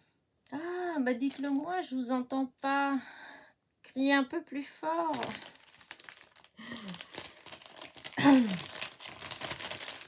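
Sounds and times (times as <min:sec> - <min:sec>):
packaging crinkling and rustling: 0:01.2 - 0:01.7, 0:05.1 - 0:10.0
person making falling vocal sounds: 0:08.1 - 0:08.7.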